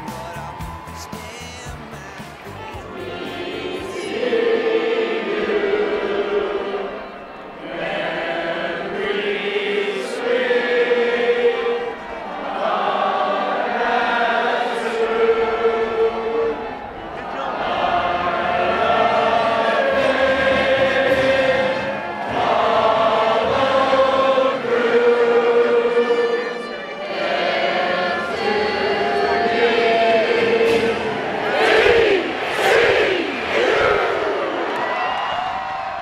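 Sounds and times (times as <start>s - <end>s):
many voices singing: 2.0s - 35.3s.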